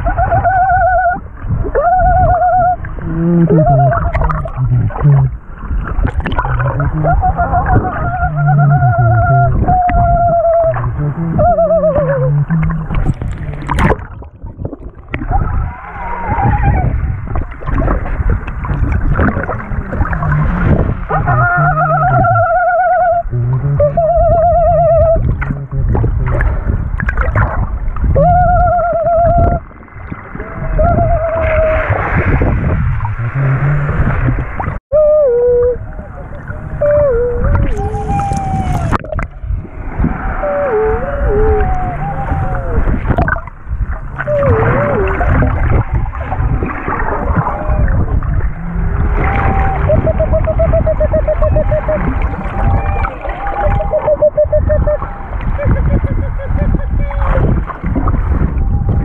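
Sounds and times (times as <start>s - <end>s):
underwater rush of water and bubbles: 0.0s - 34.8s, 35.4s - 59.0s
low hum through snorkels: 0.0s - 59.0s
high wavering squealing tone: 1.8s - 5.4s, 6.4s - 13.2s, 19.8s - 26.1s.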